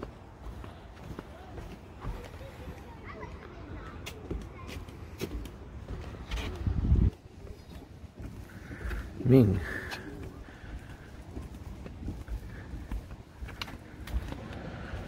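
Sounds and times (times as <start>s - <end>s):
faint voices: 0.0s - 15.0s
footsteps on wooden planks: 0.0s - 15.0s.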